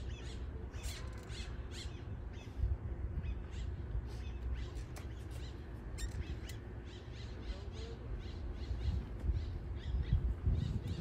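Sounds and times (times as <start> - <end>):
wind rumble on microphone: 0.0 - 5.0, 5.6 - 11.0
birds chirping: 0.0 - 11.0.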